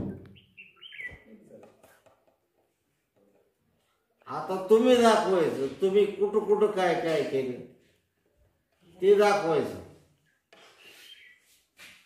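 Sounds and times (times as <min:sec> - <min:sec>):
bird chirping: 0:00.0 - 0:02.1, 0:10.6 - 0:11.6.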